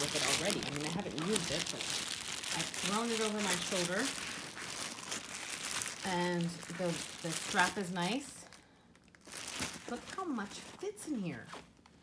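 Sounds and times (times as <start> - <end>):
fabric bag rustling and crinkling: 0.0 - 11.8.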